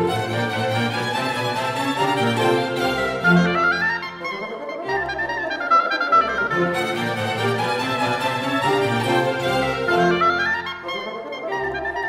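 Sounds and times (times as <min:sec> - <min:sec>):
chamber orchestra playing: 0:00.0 - 0:12.0
oboe and bassoon melody: 0:00.0 - 0:12.0.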